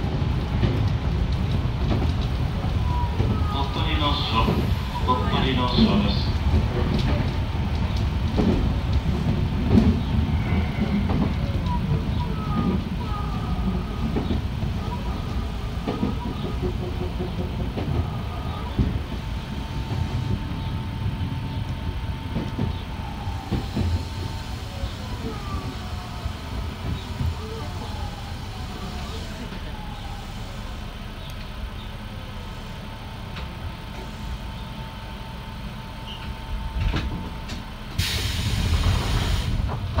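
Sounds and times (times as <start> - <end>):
train running on rails: 0.0 - 40.0
loud rushing hiss: 37.9 - 39.8.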